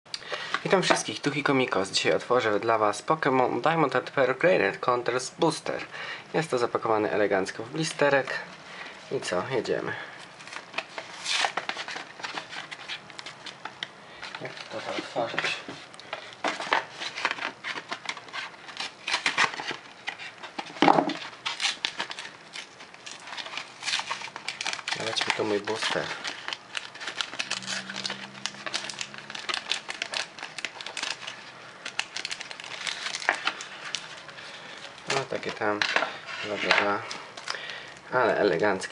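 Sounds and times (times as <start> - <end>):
plastic blister pack crackling: 0.1 - 2.3, 7.4 - 38.9
plastic rustling: 0.2 - 4.3, 5.4 - 38.9.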